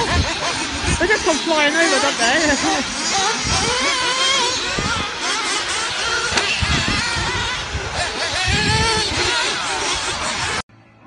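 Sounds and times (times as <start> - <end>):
small buggy engines whining: 0.0 - 10.6.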